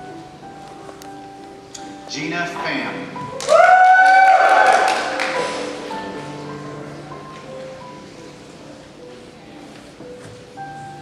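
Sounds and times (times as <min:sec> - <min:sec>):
soft background music: 0:00.0 - 0:11.0
person whooping: 0:03.4 - 0:05.1
hand claps: 0:04.6 - 0:05.5.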